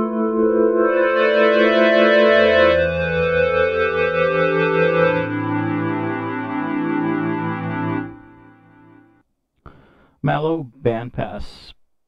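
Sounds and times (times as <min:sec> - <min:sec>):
synth pad chords: 0:00.0 - 0:09.2.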